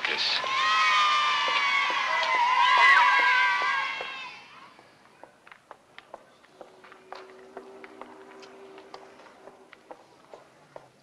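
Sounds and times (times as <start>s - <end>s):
children shouting and whooping: 0.4s - 4.8s
footsteps on pavement: 0.9s - 11.0s.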